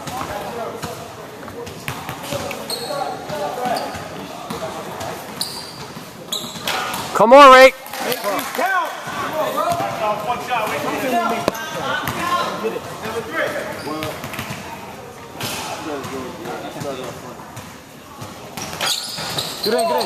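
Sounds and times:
indistinct chatter of voices: 0.0 - 20.0.

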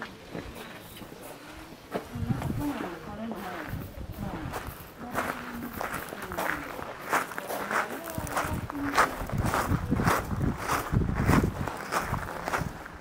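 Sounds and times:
footsteps on gravel: 0.0 - 13.0.

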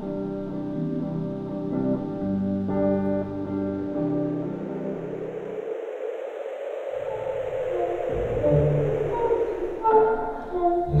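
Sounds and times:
faint hum: 0.0 - 11.0
hiss-like noise: 0.0 - 11.0.

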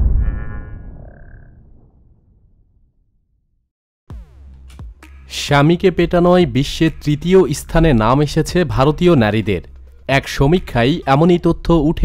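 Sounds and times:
deep cinematic boom: 0.0 - 5.2.

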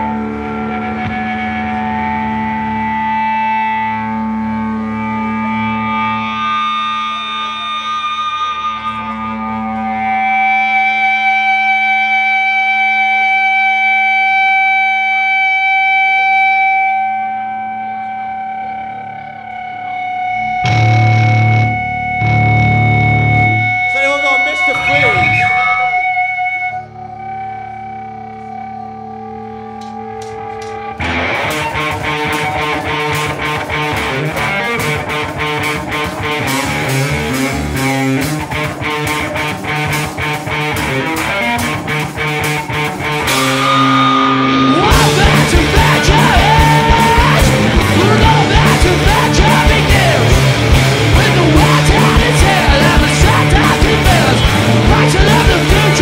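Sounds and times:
distorted electric guitars: 0.0 - 56.0
full rock band playing: 0.0 - 56.0
heavy low hits: 20.6 - 23.9.

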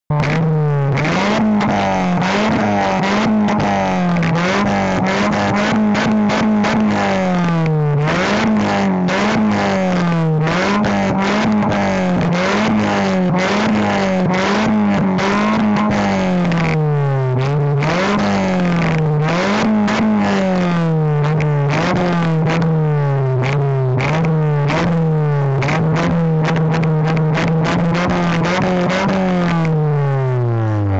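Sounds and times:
car exhaust revving: 0.1 - 30.9.

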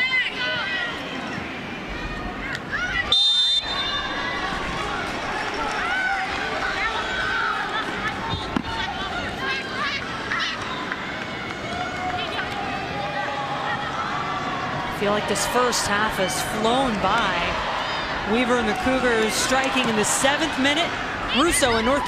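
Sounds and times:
stadium crowd noise: 0.0 - 22.0
referee's whistle: 3.1 - 4.1
people shouting: 11.8 - 22.0.

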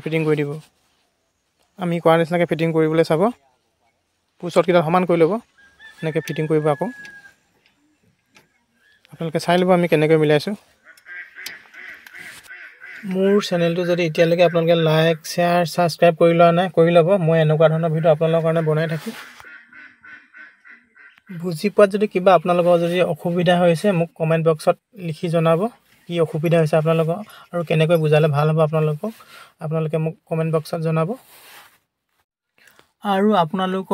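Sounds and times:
man speaking: 0.0 - 0.7, 1.8 - 3.6, 4.4 - 7.0, 9.1 - 10.6, 13.0 - 19.3, 21.3 - 31.2, 33.0 - 33.9.

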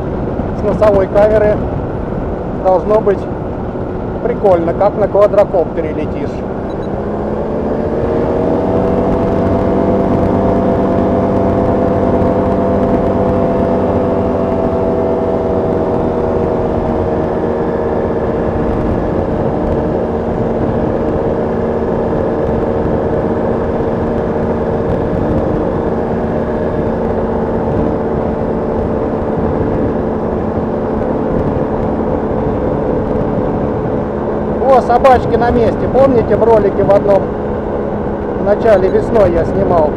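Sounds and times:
engine and propeller at high power: 0.0 - 39.9.

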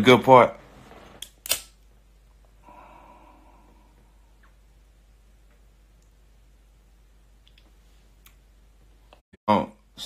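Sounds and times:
faint steady hiss: 0.0 - 10.0
lighter clicks: 1.2 - 1.7.

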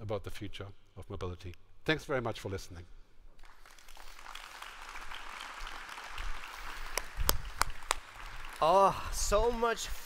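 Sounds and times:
audience applauding: 3.4 - 9.4.

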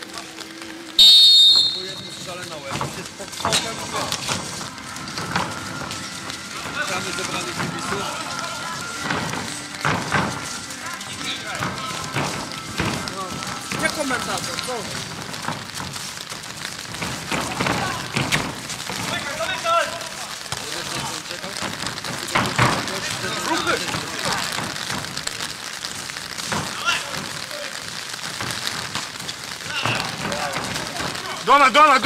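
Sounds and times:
outdoor hiss: 0.0 - 32.0.

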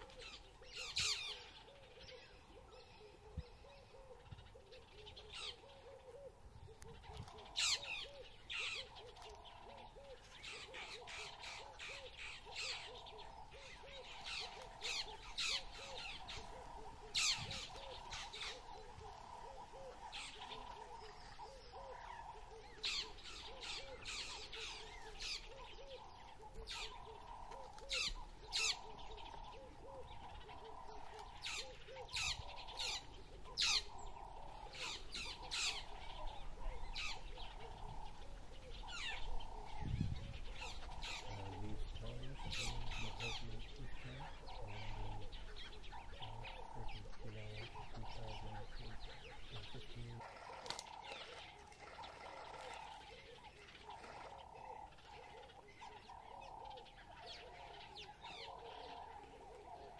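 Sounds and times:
lower bird call: 0.0 - 59.9.

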